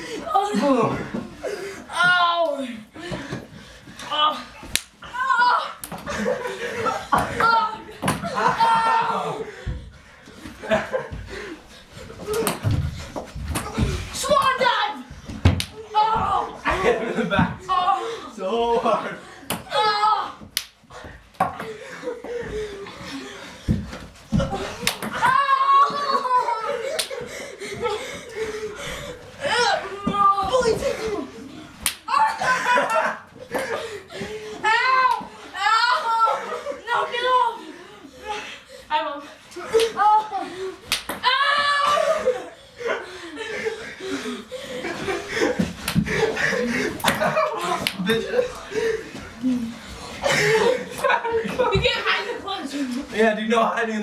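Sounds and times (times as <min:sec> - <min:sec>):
boys yelling and laughing: 0:00.0 - 0:54.0
sharp smacks: 0:04.7 - 0:05.0, 0:40.9 - 0:41.2
loud high yell: 0:05.1 - 0:05.8, 0:08.4 - 0:09.4, 0:25.1 - 0:26.8, 0:34.6 - 0:37.6, 0:41.2 - 0:42.2.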